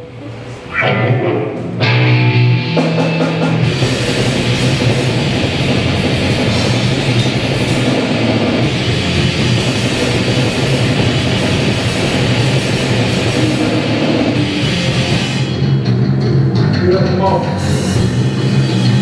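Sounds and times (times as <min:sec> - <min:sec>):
distorted electric guitars: 0:00.0 - 0:19.0
drum kit: 0:00.7 - 0:19.0.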